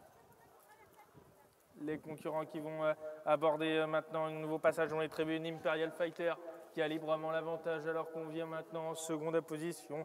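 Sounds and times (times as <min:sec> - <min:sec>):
man speaking: 0:01.8 - 0:10.0.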